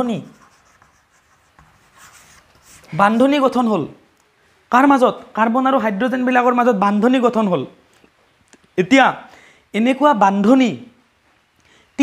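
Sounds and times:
chalk scratching on chalkboard: 0:00.0 - 0:03.3.

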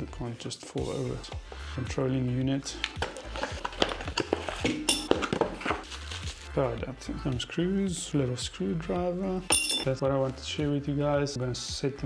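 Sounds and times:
cardboard and paper rustling: 0:03.0 - 0:06.5.

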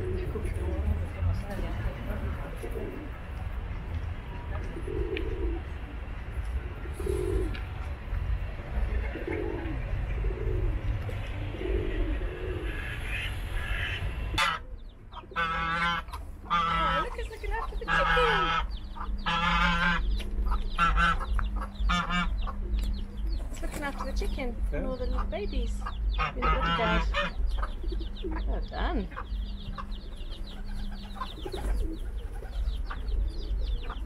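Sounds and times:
pigeons cooing: 0:00.0 - 0:01.5, 0:02.1 - 0:03.6, 0:04.6 - 0:34.0
hen clucking: 0:08.8 - 0:34.0.

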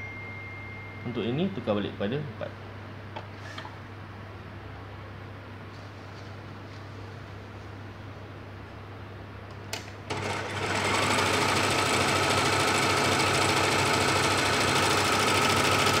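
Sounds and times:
overlock sewing machine running: 0:10.1 - 0:16.0.

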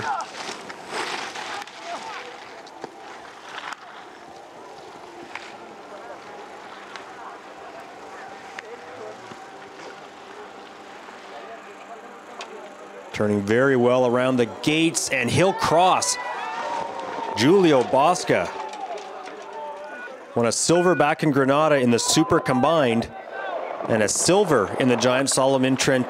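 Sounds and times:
faint distant voices: 0:00.0 - 0:20.5.

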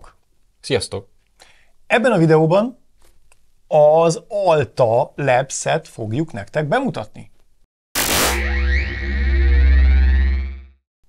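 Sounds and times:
deep synth bass drone: 0:08.0 - 0:10.8.

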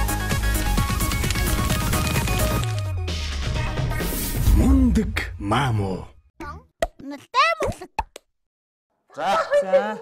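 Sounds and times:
high-pitched child-like voice: 0:06.4 - 0:08.0.

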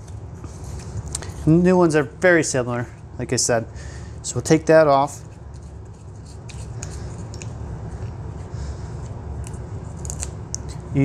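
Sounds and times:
steady low hum: 0:00.0 - 0:11.0
faint scrapes of small parts: 0:05.2 - 0:10.9.

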